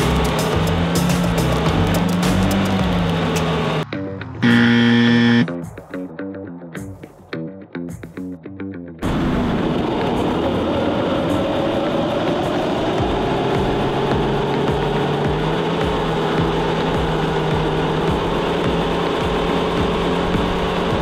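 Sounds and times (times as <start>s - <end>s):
car engine at steady revs: 0.0s - 5.4s, 9.0s - 21.0s.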